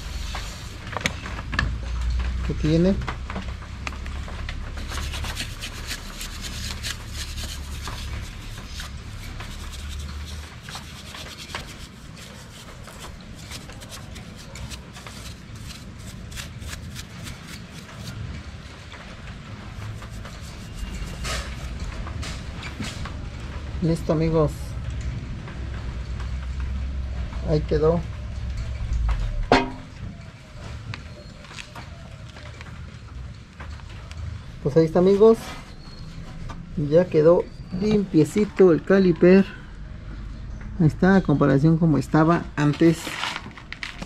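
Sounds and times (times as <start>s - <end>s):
brush scrubbing metal: 4.8s - 18.3s, 19.7s - 21.9s.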